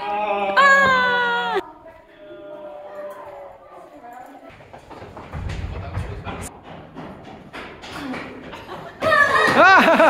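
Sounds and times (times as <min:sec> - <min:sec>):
footsteps echoing in tunnel: 0:04.4 - 0:10.0.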